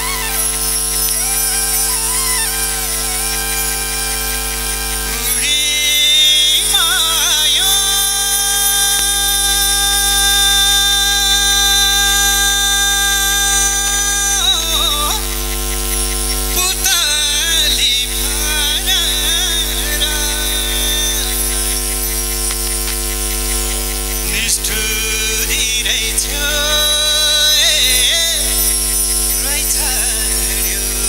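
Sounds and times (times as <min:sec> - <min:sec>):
man singing through pa: 0:05.2 - 0:22.1, 0:24.1 - 0:31.0.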